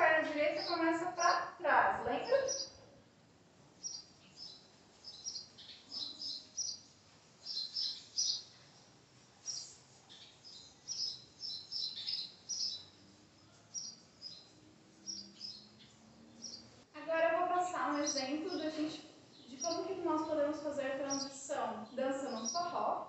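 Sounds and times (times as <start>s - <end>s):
small birds chirping: 0.0s - 2.9s, 3.7s - 23.0s.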